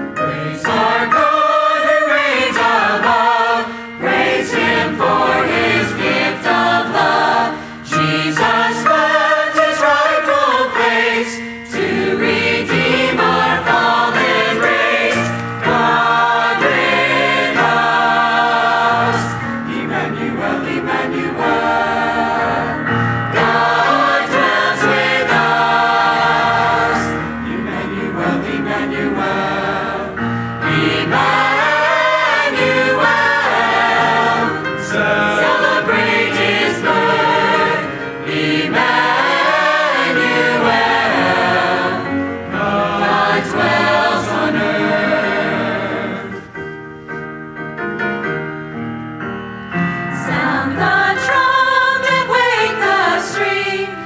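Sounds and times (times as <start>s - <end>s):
church choir singing: 0.0s - 46.7s, 49.7s - 54.0s.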